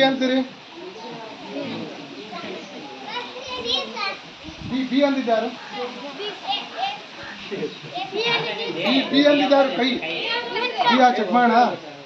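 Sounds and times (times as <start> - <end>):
crowd of children talking: 0.0 - 12.0.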